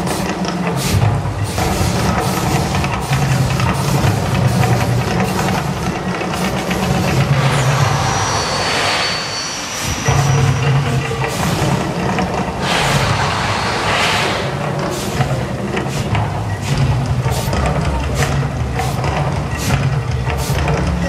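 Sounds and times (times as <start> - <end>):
deep steady rumble: 9.8 - 19.4
rush of flames bursting: 11.4 - 16.1.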